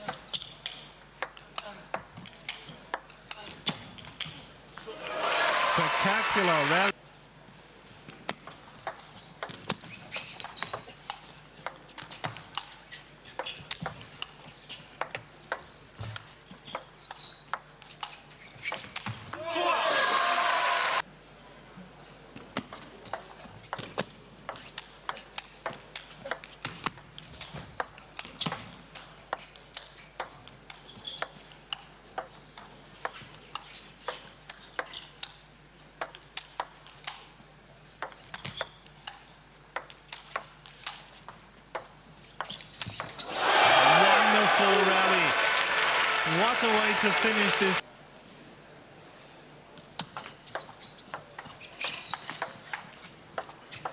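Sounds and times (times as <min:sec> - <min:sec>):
crowd noise: 0:04.9 - 0:06.9, 0:19.8 - 0:21.0, 0:43.3 - 0:47.8
people shouting: 0:04.9 - 0:06.9, 0:19.4 - 0:21.0, 0:43.3 - 0:47.8
crowd cheering and applause: 0:04.9 - 0:07.0, 0:19.5 - 0:21.0, 0:43.2 - 0:47.8.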